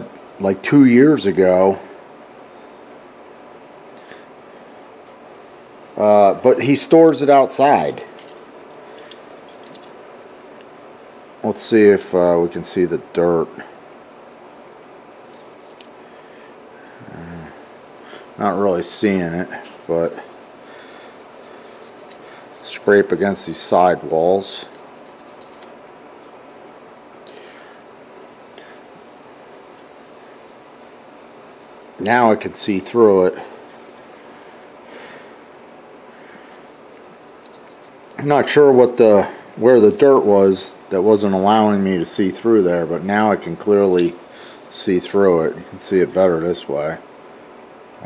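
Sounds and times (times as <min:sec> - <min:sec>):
low steady hiss: 0:00.0 - 0:48.0.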